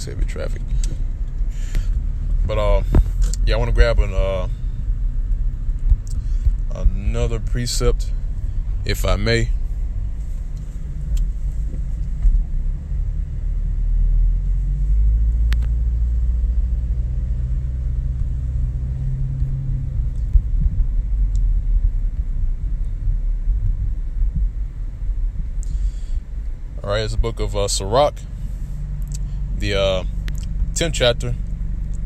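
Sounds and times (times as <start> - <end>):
car road rumble: 0.0 - 32.0.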